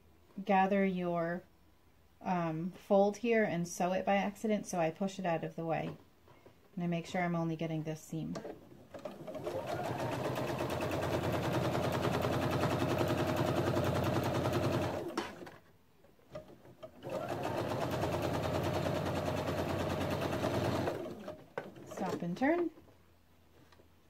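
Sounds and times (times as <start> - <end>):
sewing machine running: 8.9 - 15.6, 16.7 - 22.3.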